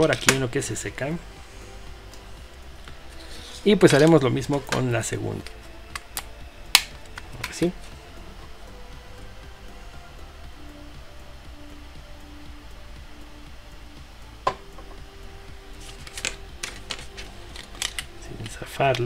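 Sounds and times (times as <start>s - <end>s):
soft background music: 0.0s - 19.0s
steady low hum: 0.0s - 19.0s
plastic parts clicking: 16.0s - 19.0s.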